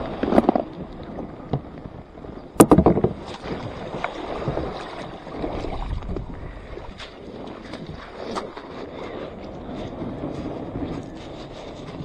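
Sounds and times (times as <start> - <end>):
kayak knocking and scraping: 0.0 - 12.0
shallow water splashing: 2.6 - 10.0.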